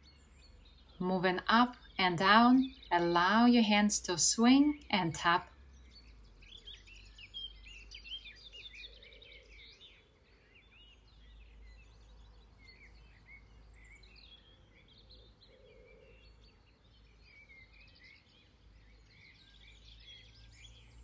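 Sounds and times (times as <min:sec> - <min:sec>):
birds chirping and twittering: 0:00.0 - 0:21.0.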